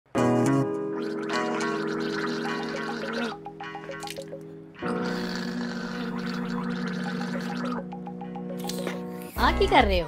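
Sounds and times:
man gargling water with tune-like notes: 0:00.9 - 0:07.9.

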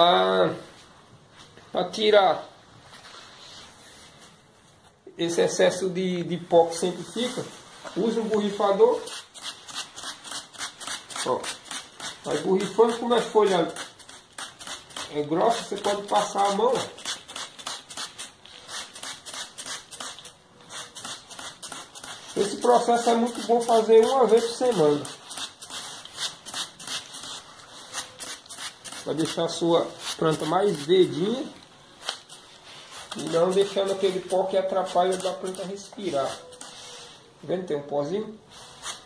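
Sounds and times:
spray bottle hissing sprays: 0:07.2 - 0:31.2, 0:32.0 - 0:37.2.

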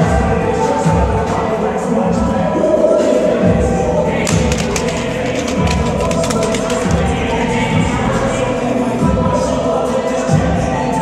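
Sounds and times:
background music with steady beat: 0:04.0 - 0:08.4
knocks and clicks: 0:04.3 - 0:07.2.

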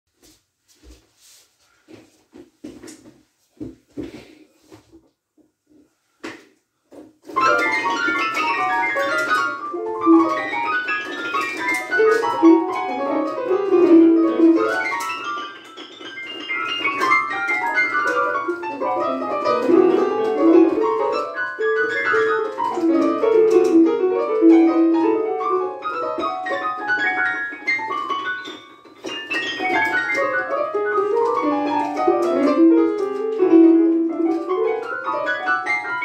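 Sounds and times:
digital piano playing fast notes: 0:07.3 - 0:36.0.

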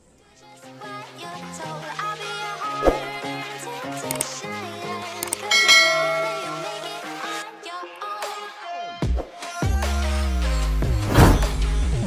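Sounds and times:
short clicks: 0:04.1 - 0:04.3, 0:05.2 - 0:05.5
bright bell chime: 0:05.5 - 0:07.4.

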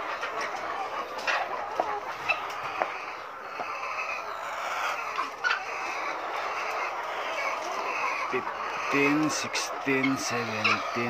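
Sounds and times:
hens clucking: 0:00.0 - 0:11.0.

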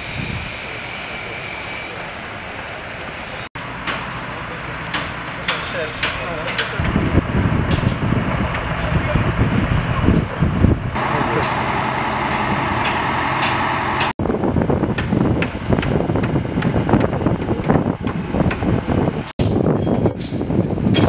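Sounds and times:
machinery rumble: 0:00.0 - 0:21.0
crane engine running: 0:00.1 - 0:14.2.

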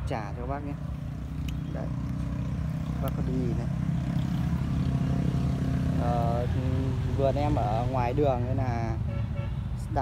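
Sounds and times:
traffic engines droning: 0:00.0 - 0:10.0.

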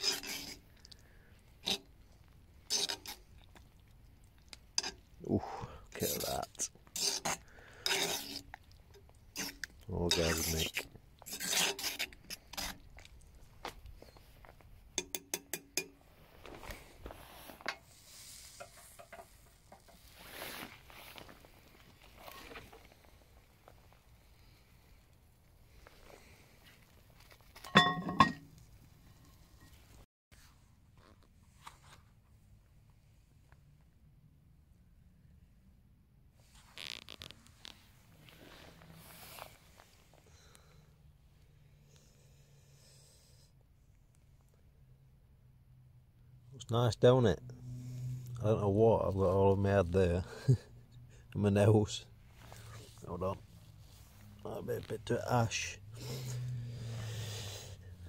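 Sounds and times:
utensils scraping in pot: 0:00.0 - 0:03.7, 0:04.7 - 0:05.1, 0:05.9 - 0:13.1, 0:17.3 - 0:21.0, 0:27.6 - 0:30.0
metal knocks and clinks: 0:27.7 - 0:28.5.

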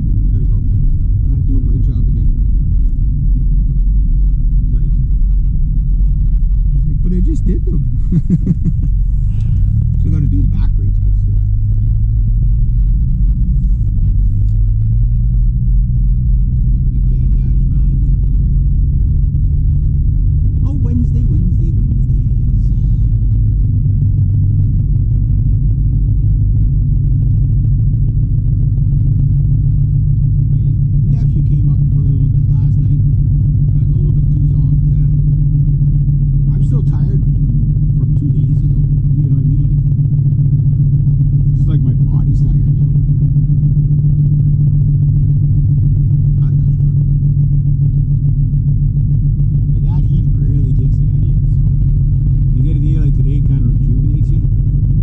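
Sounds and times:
car interior engine and road rumble: 0:00.0 - 0:55.0.

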